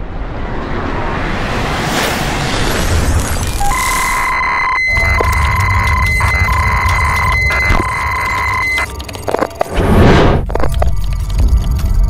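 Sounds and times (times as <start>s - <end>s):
long synthetic beeps: 3.6s - 9.0s.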